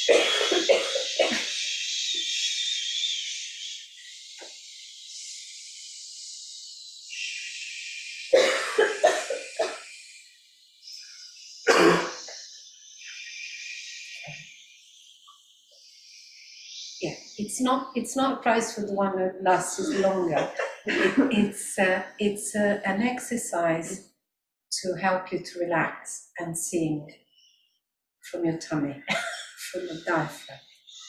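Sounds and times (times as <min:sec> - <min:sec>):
people coughing: 0:00.0 - 0:01.7, 0:08.3 - 0:09.8, 0:11.7 - 0:12.2, 0:19.8 - 0:22.0, 0:29.1 - 0:30.2.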